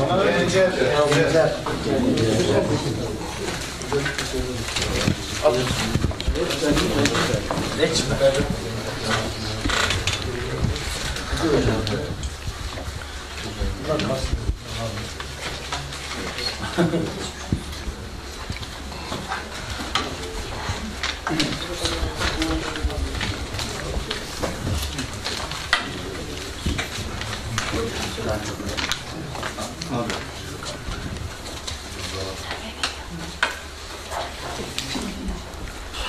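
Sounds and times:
people chattering: 0.0 - 36.0.

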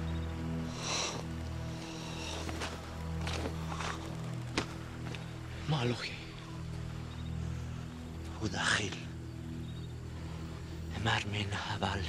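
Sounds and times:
low film score drone: 0.0 - 12.0
slow footsteps on earth: 0.7 - 5.4.

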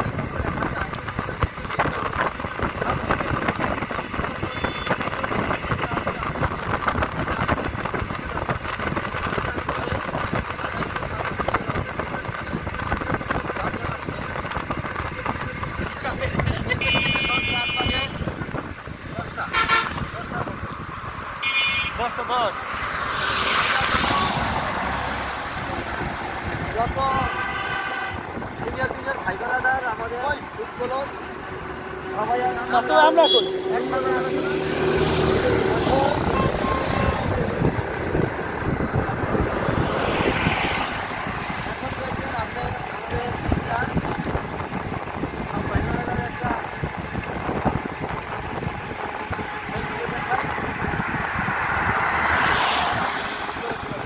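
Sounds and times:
wind buffeting microphone: 0.0 - 21.4, 22.1 - 54.0
passing motorbikes: 0.0 - 54.0
vehicle moving along road: 0.0 - 54.0
vehicle horn toot: 4.4 - 5.1, 16.7 - 18.4, 19.5 - 20.2, 21.4 - 22.1, 27.2 - 28.4, 33.1 - 33.8.

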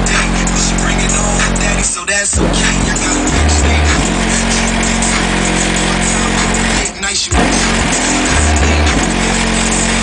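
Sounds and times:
heavy bass hit: 0.0 - 10.0
loud bass-heavy car music: 0.0 - 10.0.

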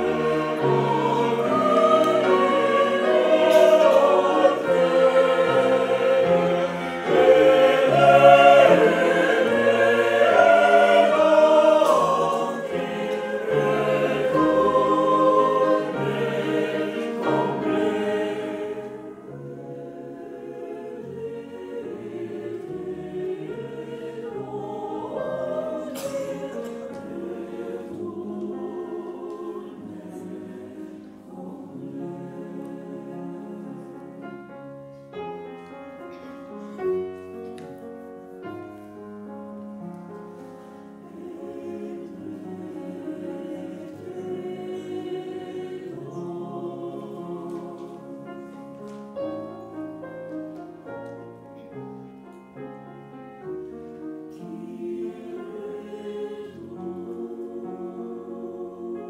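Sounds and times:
mixed choir singing: 0.0 - 39.0, 40.2 - 59.0.

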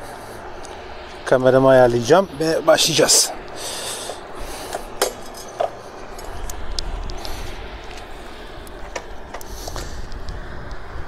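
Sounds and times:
wind and road noise: 0.0 - 11.0.

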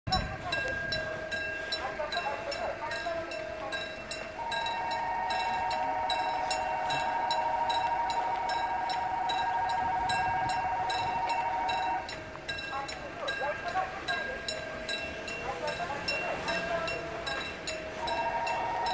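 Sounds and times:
level crossing warning bell: 0.1 - 18.9.

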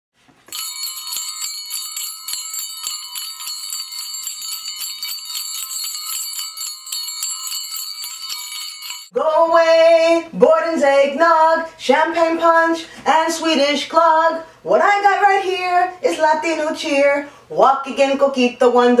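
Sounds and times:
small bells jingling: 0.5 - 9.2
woman singing: 9.1 - 19.0.

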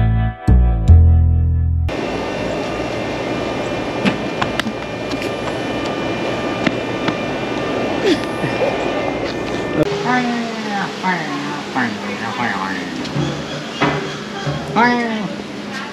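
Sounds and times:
outdoor background noise: 1.9 - 15.9
faint indistinct voices: 8.0 - 15.9.

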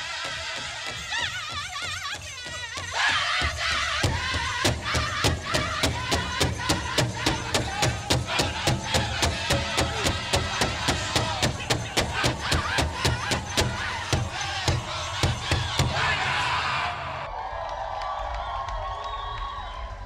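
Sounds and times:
fast steady drumbeat: 0.0 - 16.9
wavering voices singing: 0.0 - 17.3
audience cheering: 2.9 - 20.0.

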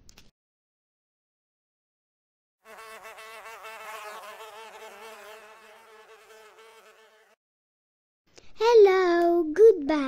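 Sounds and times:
bee buzzing: 2.6 - 7.4.

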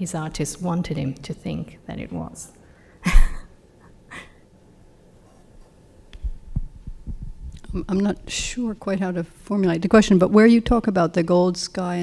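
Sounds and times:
microphone handling thumps: 6.2 - 7.9.

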